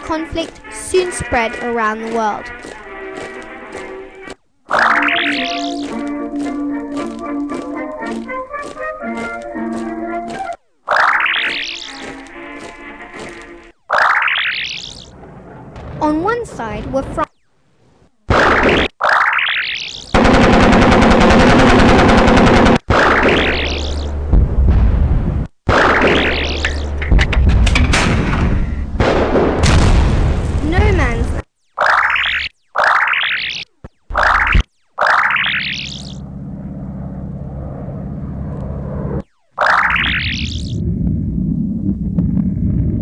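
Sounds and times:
warbling swoosh effects: 4.7s - 6.0s, 13.9s - 15.2s, 31.8s - 36.3s, 37.7s - 40.9s
machine gun burst: 20.2s - 23.3s
propeller plane engine droning: 36.0s - 39.2s.

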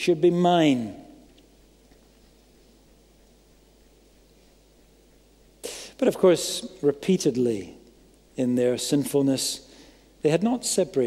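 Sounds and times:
sharp breath on microphone: 5.6s - 6.0s.

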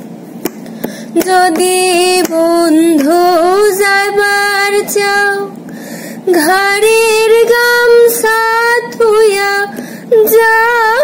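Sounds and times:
woman singing unaccompanied: 1.1s - 5.6s, 6.2s - 11.0s.

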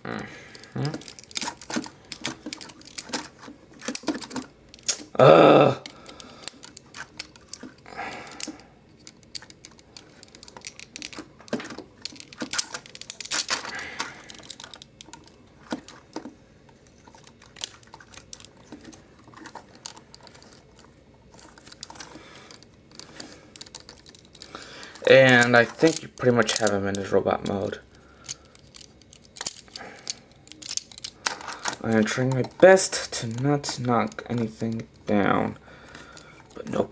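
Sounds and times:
plastic toy parts clicking: 0.5s - 5.2s, 5.8s - 16.3s, 17.0s - 36.9s.

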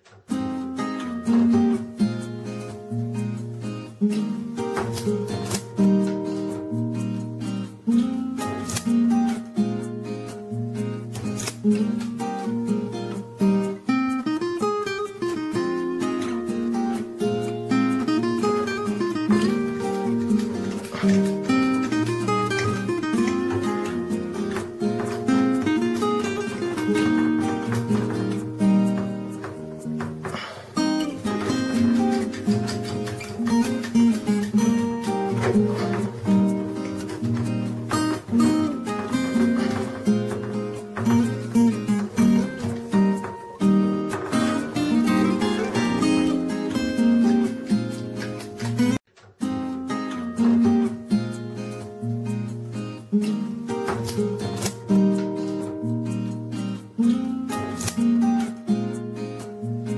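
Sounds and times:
acoustic guitar music: 0.0s - 59.9s.

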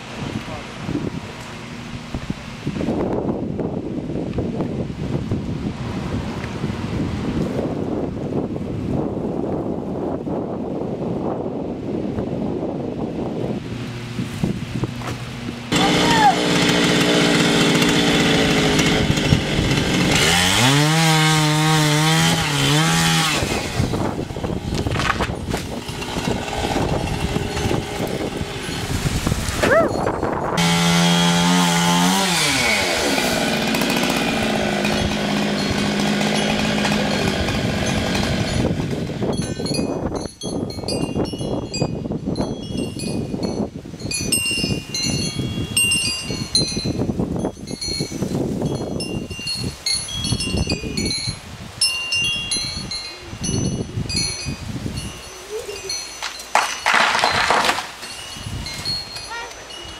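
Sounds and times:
chainsaw running: 15.2s - 39.9s
wind chime tinkling: 28.6s - 30.6s, 39.3s - 59.9s.

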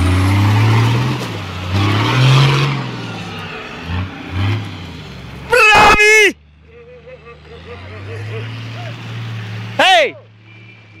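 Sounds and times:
person shouting: 5.5s - 6.4s.

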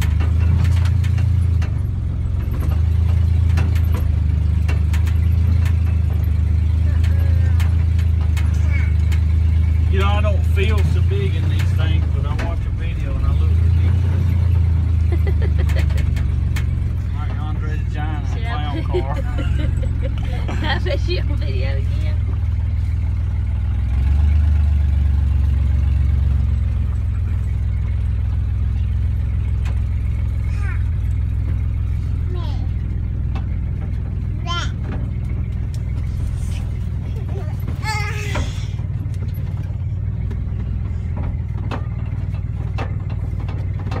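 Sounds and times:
engine and road rumble in car: 0.0s - 44.0s
children calling and squealing: 30.3s - 31.2s, 36.4s - 38.9s.

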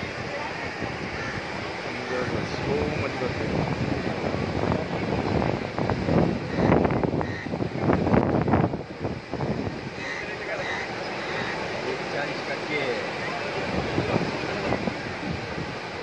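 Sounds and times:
people's voices: 0.0s - 6.9s, 9.1s - 16.0s
surf breaking on beach: 0.0s - 16.0s
wind buffeting microphone: 0.0s - 16.0s.

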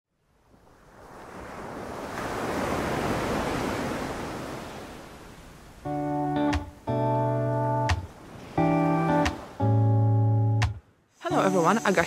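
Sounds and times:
ocean waves washing on sand: 0.2s - 6.9s, 7.8s - 9.9s
guitar music: 5.8s - 12.0s.

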